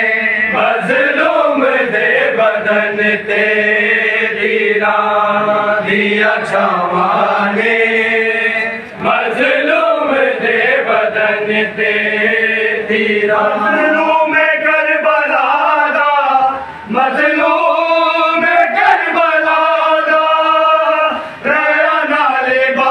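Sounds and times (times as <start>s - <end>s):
men chanting a lament: 0.0s - 22.9s.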